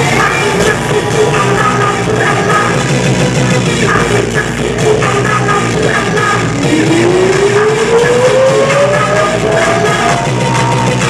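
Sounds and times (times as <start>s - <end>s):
electronic rap music: 0.0s - 11.0s
synth tone gliding upward: 6.5s - 10.5s.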